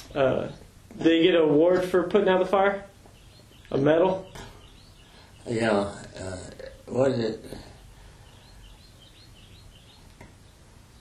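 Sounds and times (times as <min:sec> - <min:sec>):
low room hum: 0:00.0 - 0:11.0
small bird chirping: 0:02.8 - 0:11.0.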